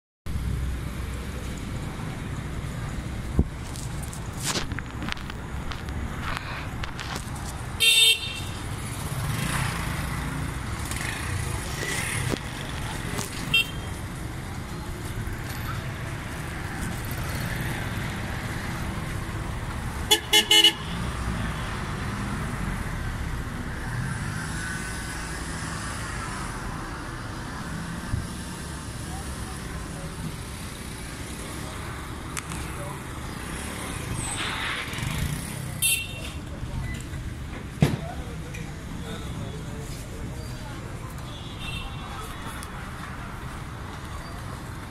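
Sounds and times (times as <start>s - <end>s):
vehicle engines running: 0.3s - 41.3s
vehicle horns honking: 7.8s - 8.6s, 13.4s - 14.0s, 20.1s - 21.1s, 35.8s - 36.4s.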